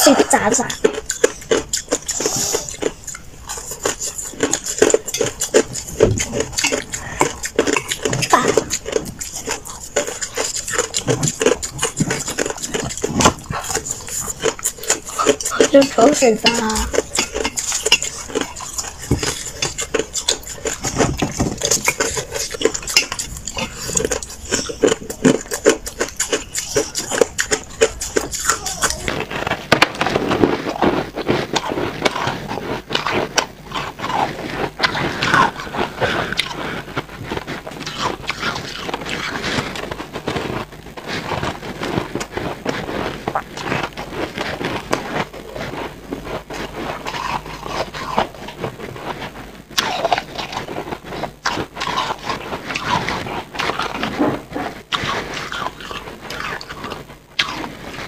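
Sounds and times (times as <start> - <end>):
ice being crunched and chewed: 0.0 - 58.0.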